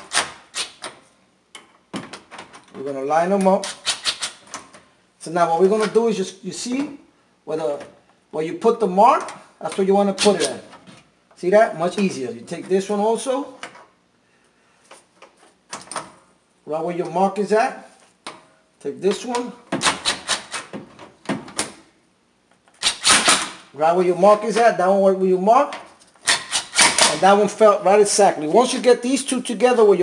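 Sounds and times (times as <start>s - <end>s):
cordless driver bursts: 22.8s - 23.6s, 26.2s - 27.2s.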